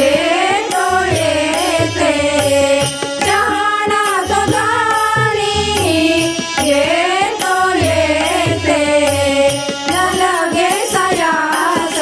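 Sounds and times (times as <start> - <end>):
devotional singing: 0.0 - 12.0
harmonium: 0.0 - 12.0
tabla: 0.0 - 12.0.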